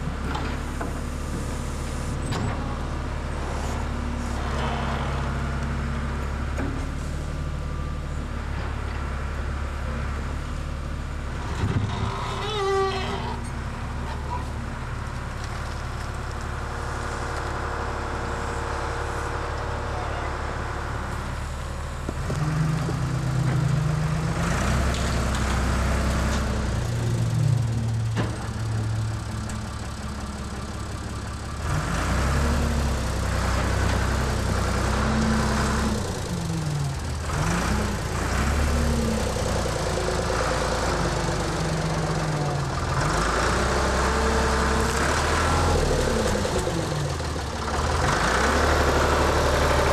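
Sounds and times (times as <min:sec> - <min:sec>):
backhoe engine running: 0:00.0 - 0:49.9.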